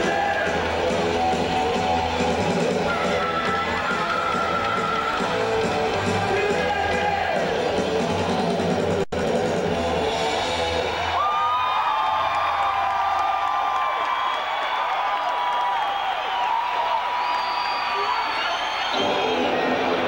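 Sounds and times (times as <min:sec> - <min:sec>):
crowd cheering: 0:00.0 - 0:20.0.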